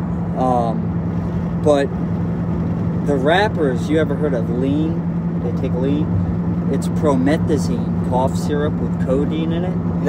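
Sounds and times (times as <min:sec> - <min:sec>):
car cabin road noise: 0:00.0 - 0:10.0.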